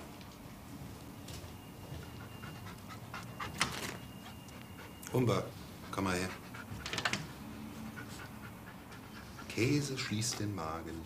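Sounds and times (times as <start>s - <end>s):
dog panting: 2.0s - 11.0s.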